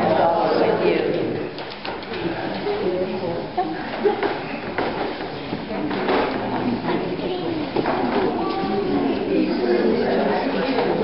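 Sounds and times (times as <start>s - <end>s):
people talking at once: 0.0s - 1.6s, 5.6s - 11.0s.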